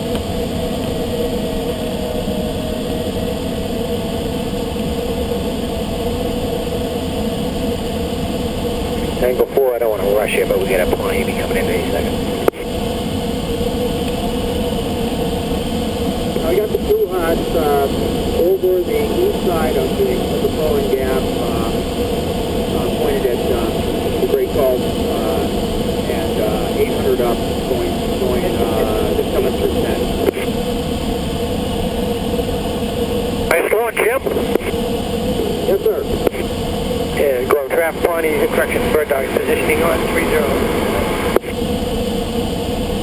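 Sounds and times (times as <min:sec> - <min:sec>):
faint steady hum: 0:00.0 - 0:43.0
rushing airflow in cockpit: 0:00.0 - 0:43.0
steady tone: 0:08.0 - 0:42.4.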